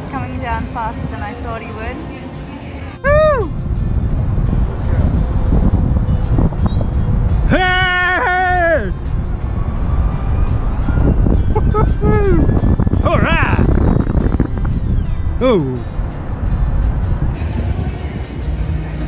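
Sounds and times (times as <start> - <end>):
wind buffeting microphone: 0.0 - 19.0
person whooping yells: 3.0 - 3.6, 7.5 - 9.0, 11.6 - 12.5.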